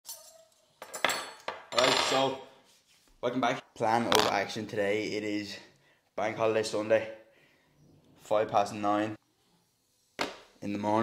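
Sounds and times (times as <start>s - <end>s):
knife and fork clinking: 0.0s - 2.2s.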